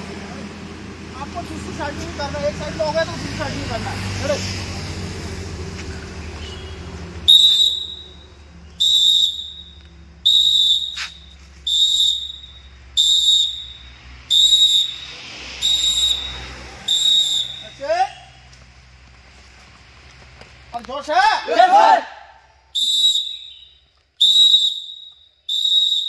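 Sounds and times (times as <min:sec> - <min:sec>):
shrill whistle blasts: 0:06.5 - 0:18.3, 0:22.7 - 0:26.0.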